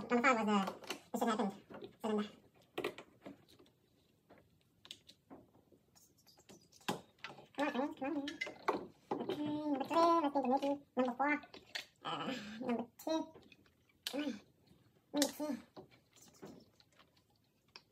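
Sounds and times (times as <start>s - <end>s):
person talking indistinctly: 7.6s - 8.5s.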